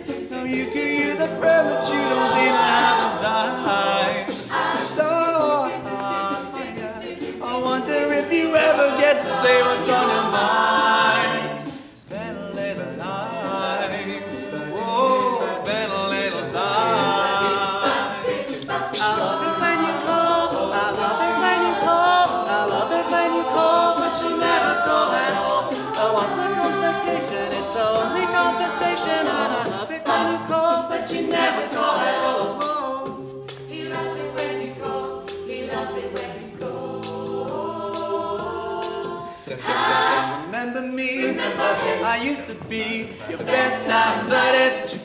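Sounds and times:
a cappella group singing: 0.0s - 45.0s.

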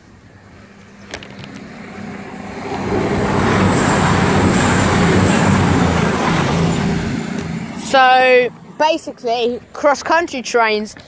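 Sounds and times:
train wheels roaring on rails: 0.0s - 9.8s
thin high whine: 0.4s - 9.0s.

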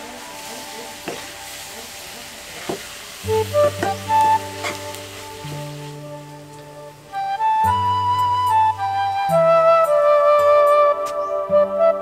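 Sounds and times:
food sizzling in a pan: 0.0s - 7.2s
background music: 0.0s - 12.0s.

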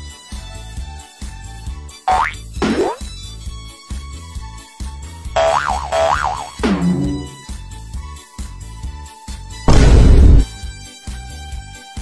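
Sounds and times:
wobbling cartoon tone: 2.1s - 3.0s, 5.4s - 7.4s
comedy music with thumping bass: 2.1s - 3.4s, 5.3s - 7.8s, 9.7s - 10.7s.

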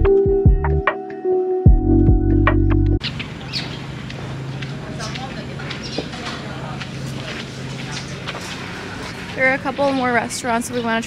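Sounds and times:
small birds chirping: 3.0s - 6.8s, 7.8s - 11.0s
steady background noise: 3.0s - 11.0s.

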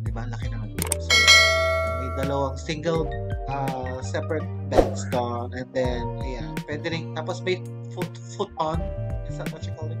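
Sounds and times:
background music: 0.0s - 10.0s
click: 0.8s - 1.0s
bright bell chime: 1.1s - 2.6s.

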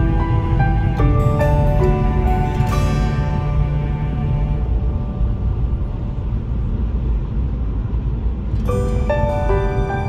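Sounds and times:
background music: 0.0s - 10.0s
car driving rumble from inside: 0.0s - 10.0s.

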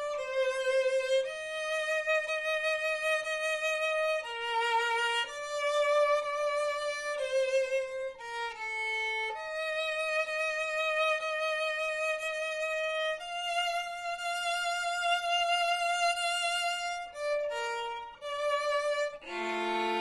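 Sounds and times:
solo violin slow bowed melody: 0.0s - 20.0s.

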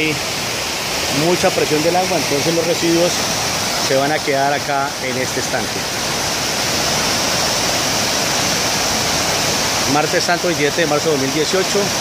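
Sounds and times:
rushing water in channel: 0.0s - 12.0s.

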